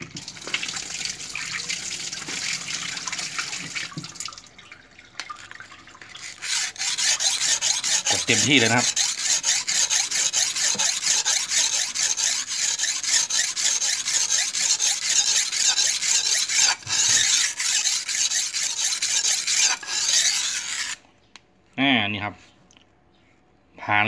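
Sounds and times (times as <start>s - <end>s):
knife scraping on sharpening stone: 6.3s - 21.0s.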